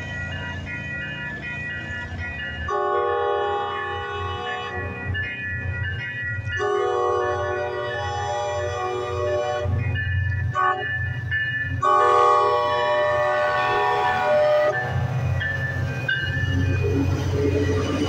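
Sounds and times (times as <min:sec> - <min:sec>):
low locomotive rumble: 0:00.0 - 0:18.0
locomotive horn blasts: 0:02.7 - 0:05.0, 0:06.6 - 0:09.8, 0:10.5 - 0:10.9, 0:11.8 - 0:14.8.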